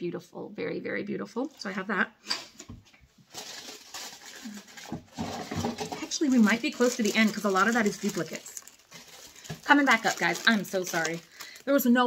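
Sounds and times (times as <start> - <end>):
packaging rustling: 3.2 - 12.0.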